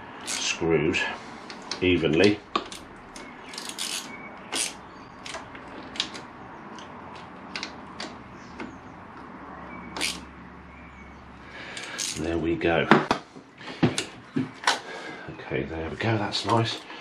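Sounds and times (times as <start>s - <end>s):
hand tool clicking on screws: 3.5s - 6.2s, 11.8s - 12.3s.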